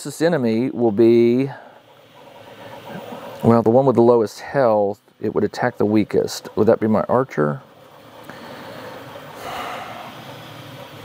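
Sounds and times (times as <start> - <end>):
room noise: 0.0 - 11.0
person exhaling: 8.2 - 10.2.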